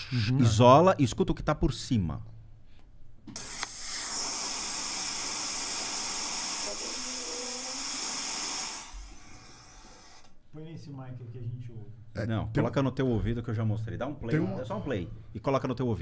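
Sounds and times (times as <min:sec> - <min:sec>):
white noise hiss from phone speaker: 0:03.3 - 0:10.4.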